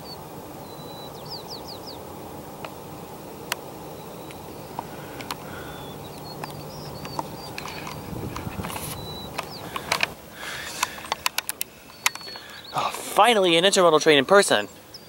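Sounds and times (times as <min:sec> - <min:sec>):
distant train rumble: 0:00.0 - 0:14.8
birds chirping: 0:00.0 - 0:15.0
sharp clicks: 0:04.2 - 0:13.0.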